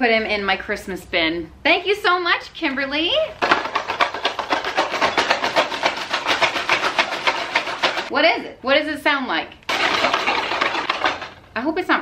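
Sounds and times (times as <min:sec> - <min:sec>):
contents rattling inside: 0:03.4 - 0:08.1, 0:09.7 - 0:11.5.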